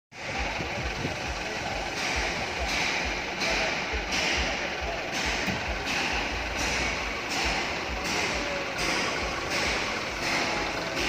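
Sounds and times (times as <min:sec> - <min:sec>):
minibus engine idling: 0:00.1 - 0:11.0.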